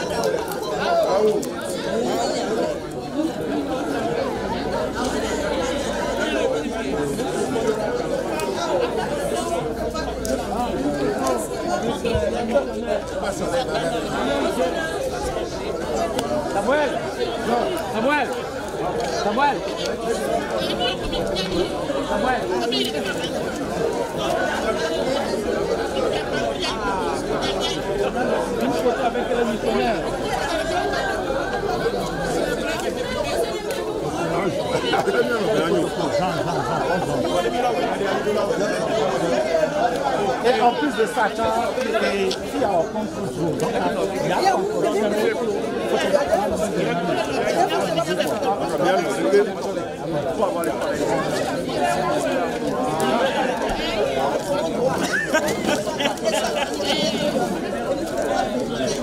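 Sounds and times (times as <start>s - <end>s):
crowd chatter: 0.0s - 59.0s.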